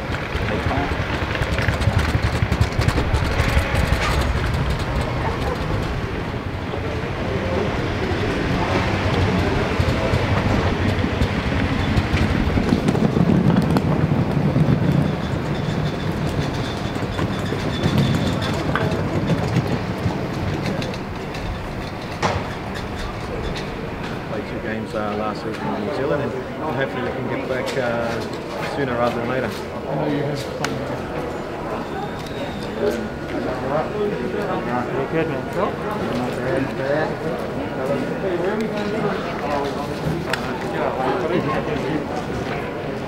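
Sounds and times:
luggage trolleys rattling on pavement: 0.0s - 43.0s.

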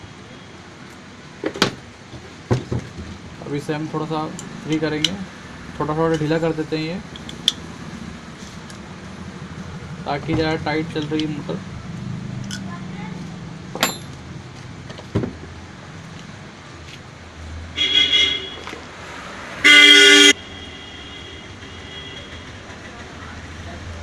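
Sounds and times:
vehicle horn honking: 17.8s - 18.7s, 19.6s - 22.6s.

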